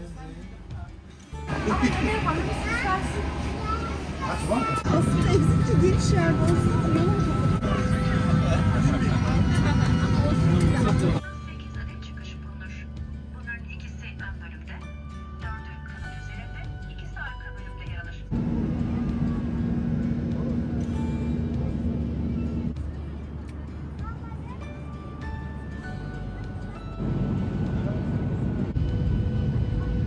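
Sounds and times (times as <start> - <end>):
aircraft cabin hum: 1.5 - 11.2, 18.3 - 22.8, 26.6 - 30.0.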